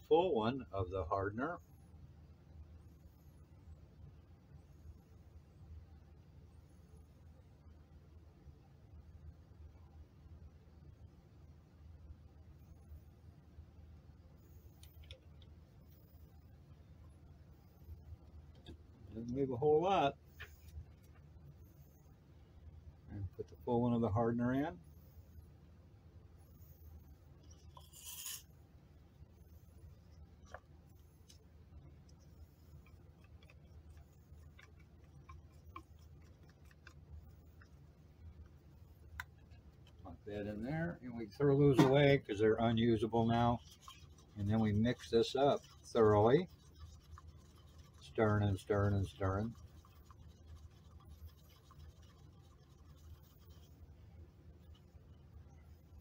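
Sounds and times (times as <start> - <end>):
faint low hum: 0.0 - 56.0
stir stick scraping paper cup: 27.4 - 28.5, 30.0 - 37.8, 41.9 - 53.9.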